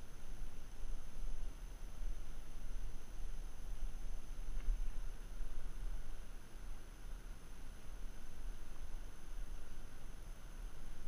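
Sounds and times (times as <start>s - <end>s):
faint high whine: 0.0s - 11.0s
low uneven microphone rumble: 0.0s - 11.0s.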